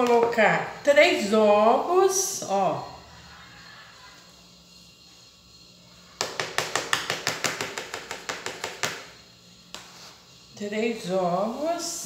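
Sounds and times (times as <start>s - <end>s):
wooden spoon tapping plastic cup: 0.0s - 0.4s, 6.2s - 9.1s.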